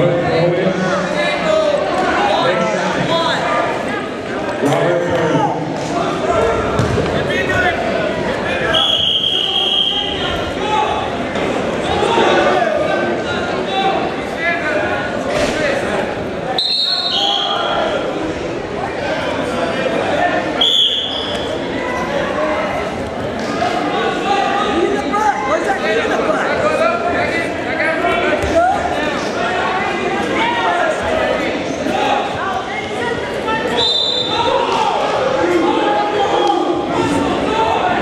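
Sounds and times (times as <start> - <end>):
crowd chatter in gymnasium: 0.0 - 38.0
voices calling out and talking: 0.0 - 38.0
referee's whistle blasts: 8.7 - 10.2, 16.6 - 17.7, 20.6 - 21.5, 33.8 - 34.4.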